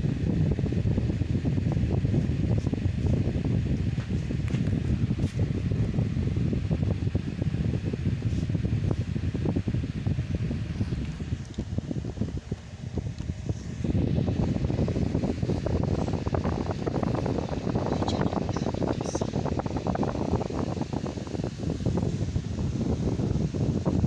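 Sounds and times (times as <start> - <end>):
air buffeting microphone: 0.0 - 24.0.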